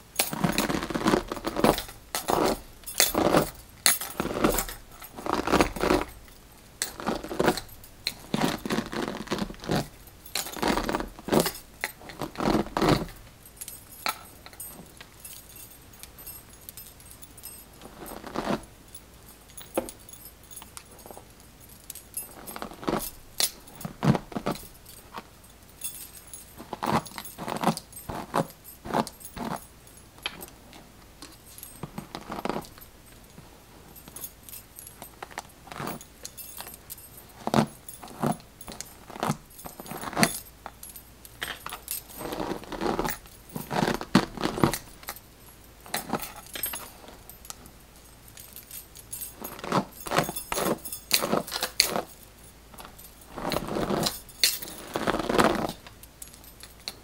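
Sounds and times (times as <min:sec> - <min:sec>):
bracelets jingling: 0:00.0 - 0:57.0.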